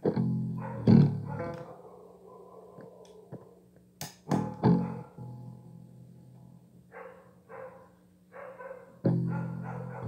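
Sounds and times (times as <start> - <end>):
electric guitar: 0.0 - 1.8, 2.7 - 6.9, 8.8 - 10.0.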